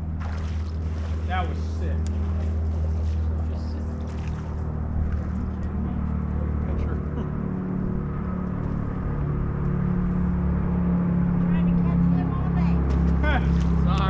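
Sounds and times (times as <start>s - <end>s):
electric trolling motor humming: 0.0s - 14.0s.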